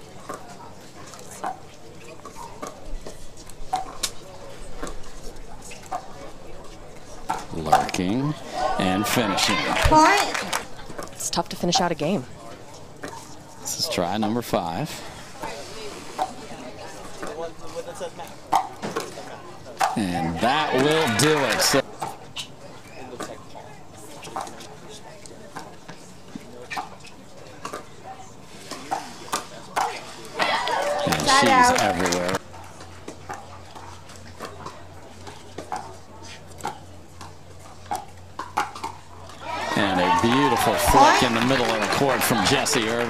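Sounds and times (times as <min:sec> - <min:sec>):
murmur of voices: 0:00.0 - 0:43.0.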